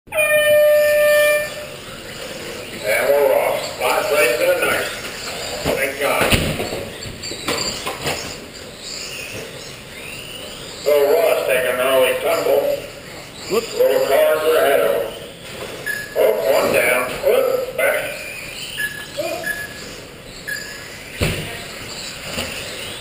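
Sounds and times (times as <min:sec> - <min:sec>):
loud steady electronic tone: 0:00.1 - 0:06.1, 0:08.8 - 0:21.9
indistinct voices: 0:00.1 - 0:07.2, 0:09.3 - 0:22.2.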